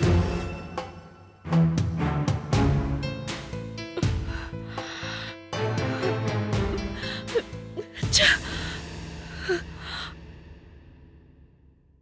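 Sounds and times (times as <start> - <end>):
woman gasping: 3.9 - 10.2.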